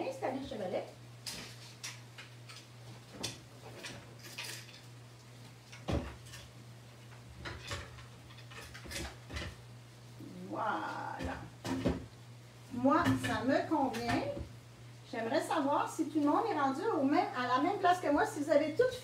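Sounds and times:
wooden knocks and clatter: 5.8 - 6.3.

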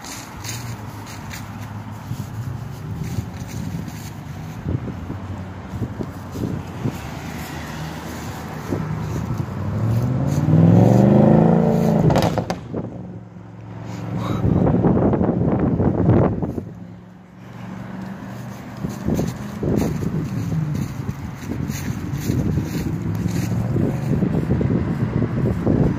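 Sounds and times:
car engine accelerating: 0.0 - 25.9
sharp exhaust cracks: 6.0 - 13.2.

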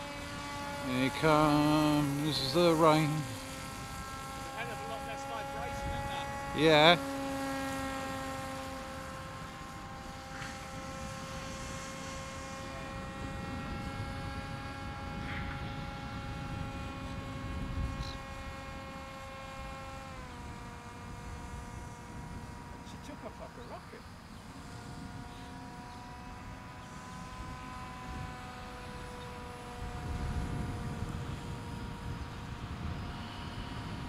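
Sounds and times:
electric motor and propeller whine: 0.0 - 34.0.

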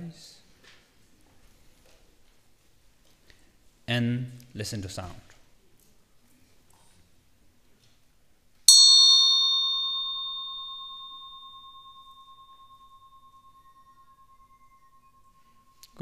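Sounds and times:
meditation bell ringing: 8.7 - 16.0.

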